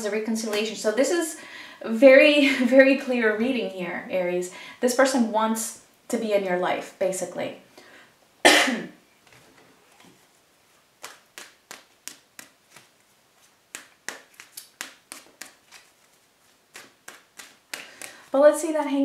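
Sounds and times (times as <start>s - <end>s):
person coughing: 8.4s - 9.0s
cards snapping and clicking: 11.0s - 12.9s, 13.7s - 15.9s, 16.7s - 18.2s.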